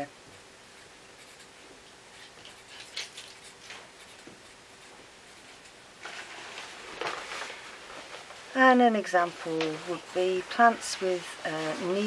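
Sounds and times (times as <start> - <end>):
marker pen scratching on paper: 0.8 - 5.8.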